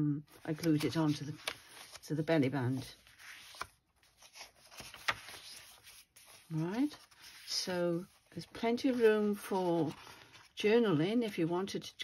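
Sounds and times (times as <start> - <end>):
paper pages turning: 0.3 - 11.2.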